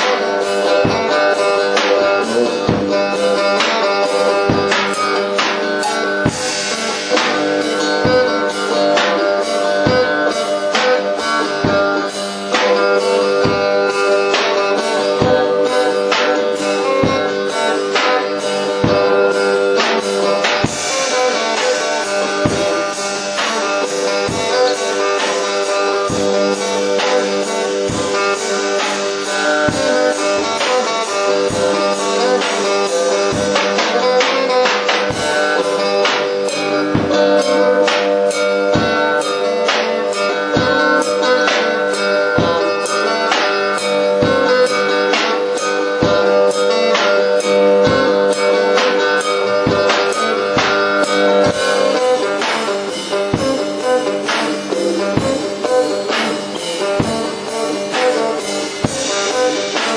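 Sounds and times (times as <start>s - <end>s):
plucked guitar notes: 0.0s - 59.9s
steady drum beat: 0.0s - 59.9s.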